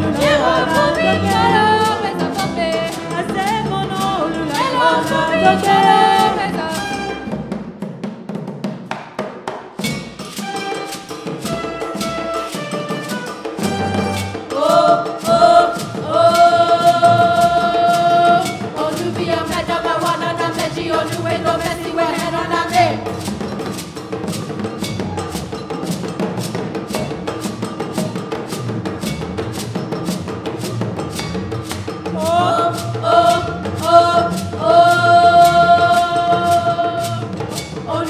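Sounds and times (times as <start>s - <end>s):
brass band playing: 0.0s - 7.6s, 10.2s - 23.7s
percussion groove with sharp hits: 0.0s - 38.0s.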